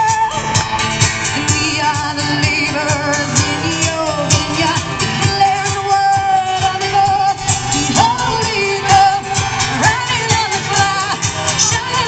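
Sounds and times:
woman singing into a microphone: 0.0 - 0.6, 1.2 - 12.0
guitar: 0.0 - 12.0.

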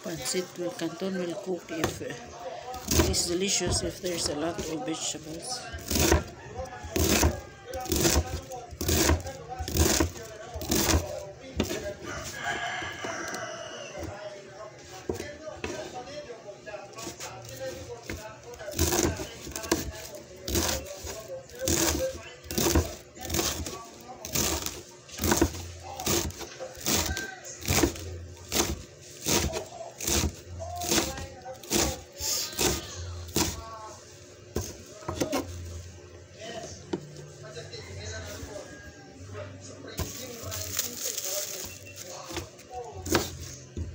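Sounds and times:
knife chopping on cutting board: 2.8 - 4.8, 5.8 - 12.0, 17.0 - 33.6, 34.5 - 35.5, 40.0 - 43.9
rooster crowing: 5.9 - 8.4, 11.8 - 14.3, 25.8 - 28.3, 37.4 - 41.0.

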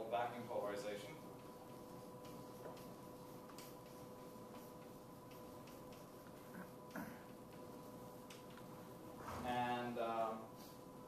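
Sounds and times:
chalk writing on blackboard: 0.1 - 8.5.

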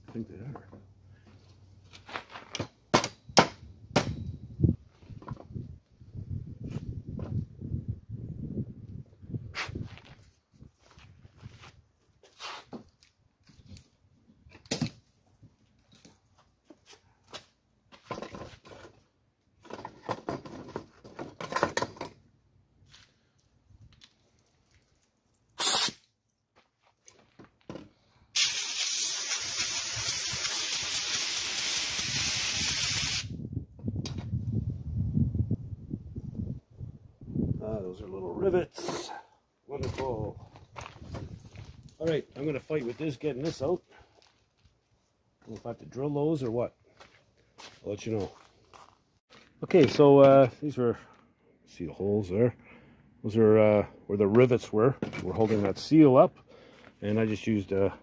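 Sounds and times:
compressed air blow gun hissing: 25.6 - 26.0, 28.4 - 33.3.

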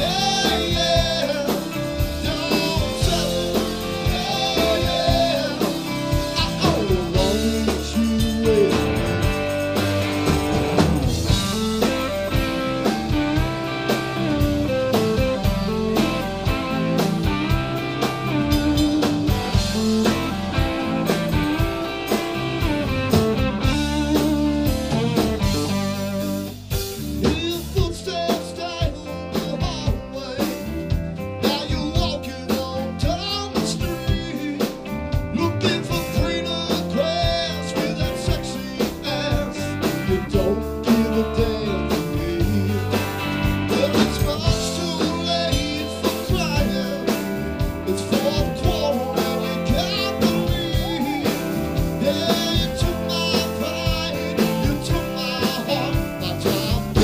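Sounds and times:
live blues-rock band playing: 0.0 - 57.0.

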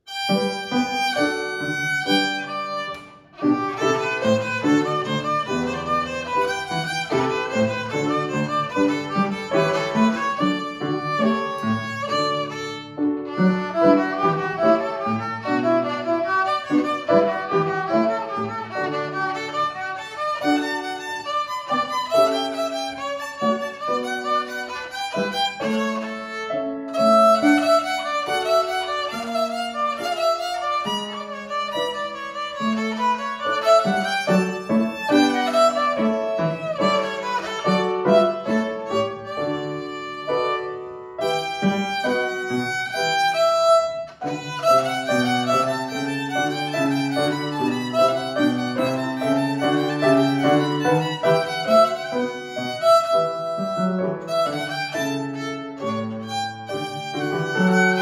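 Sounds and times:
upright piano accompaniment: 0.0 - 58.0
violin playing classical piece: 0.0 - 58.0.

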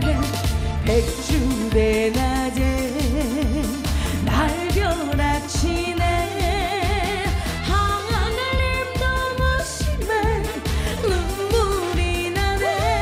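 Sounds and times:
backing track with bass beat: 0.0 - 13.0
woman singing with vibrato: 0.0 - 13.0.

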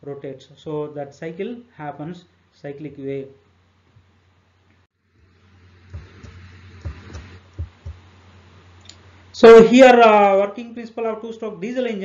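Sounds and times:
faint room hiss: 0.0 - 12.0
soft low thumps: 5.8 - 8.3.

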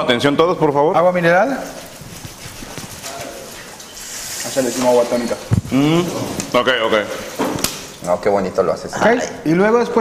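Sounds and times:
water pouring onto ice: 0.9 - 8.3.

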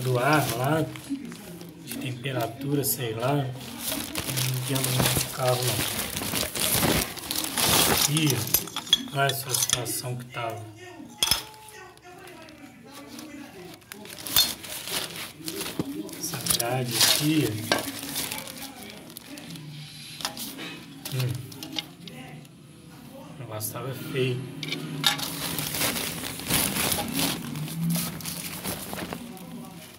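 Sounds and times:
plastic sheeting rustling: 0.0 - 8.7, 12.2 - 21.6, 25.0 - 29.9.

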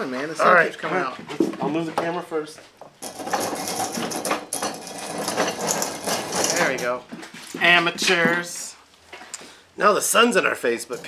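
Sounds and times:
glass bottles rattling and clinking: 2.8 - 8.5
table scraping along floor: 3.0 - 8.4.

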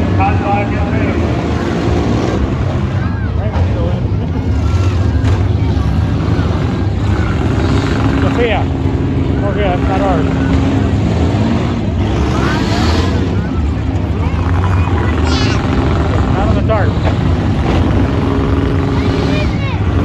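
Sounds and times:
car engines revving: 0.0 - 20.0
spectators' voices and shouts: 0.0 - 20.0.

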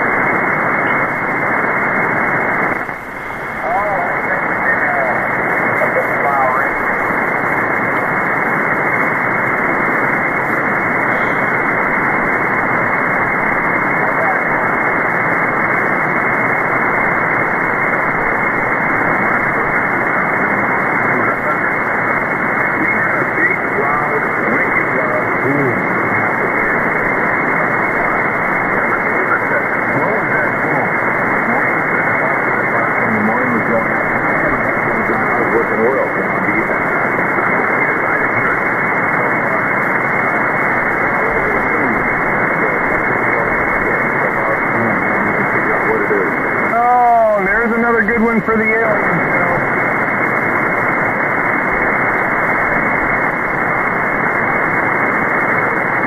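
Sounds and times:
faint radio voices: 0.0 - 56.0
radio static hiss: 0.0 - 56.0.

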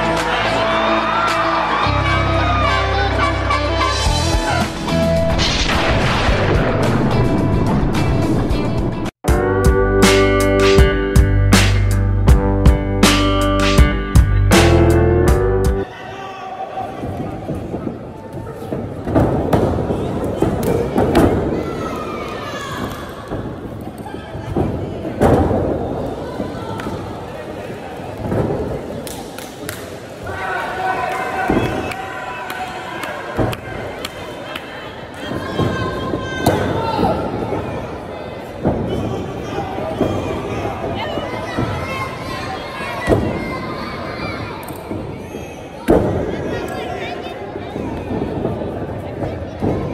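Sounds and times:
crowd shouting and chatter: 0.0 - 49.9.

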